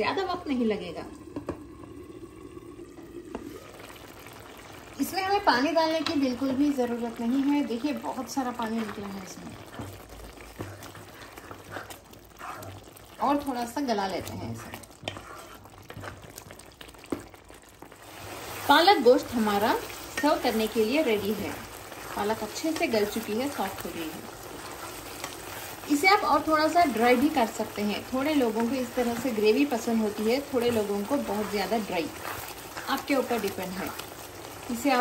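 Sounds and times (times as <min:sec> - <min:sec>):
curry bubbling in a pan: 0:00.0 - 0:35.0.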